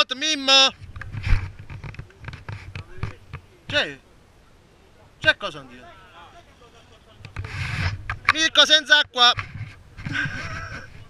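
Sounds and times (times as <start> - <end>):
scraping on camera microphone: 0.7 - 3.8, 7.2 - 11.0.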